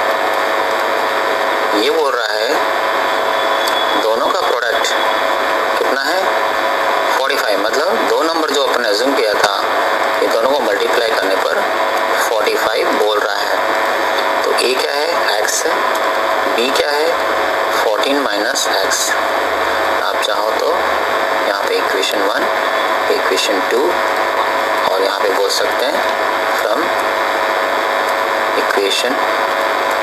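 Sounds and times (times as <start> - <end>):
steady hiss: 0.0 - 30.0.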